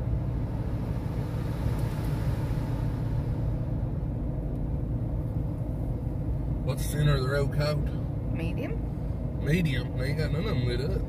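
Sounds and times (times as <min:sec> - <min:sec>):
car engine and tyres rumbling: 0:00.0 - 0:11.0
soft hiss: 0:00.1 - 0:08.1.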